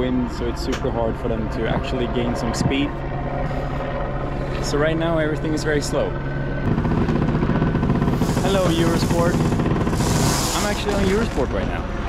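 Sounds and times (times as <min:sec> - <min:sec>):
helicopter rotor beating: 0:00.0 - 0:12.0.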